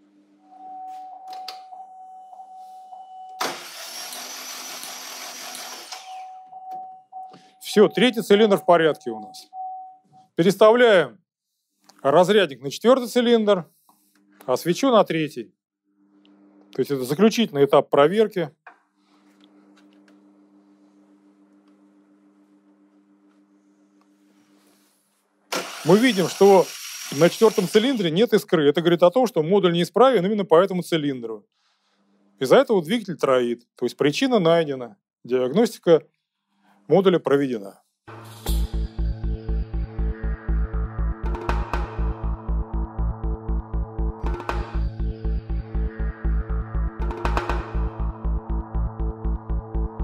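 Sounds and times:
starter motor cranking engine: 0:03.4 - 0:06.2, 0:25.5 - 0:28.0
steady high electronic tone: 0:38.1 - 0:50.0.

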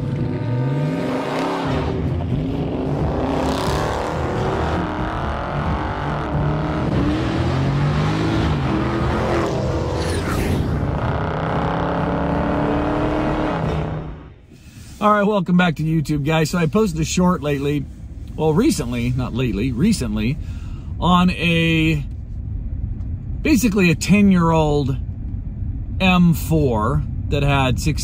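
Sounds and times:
car engine revving: 0:00.0 - 0:14.4.

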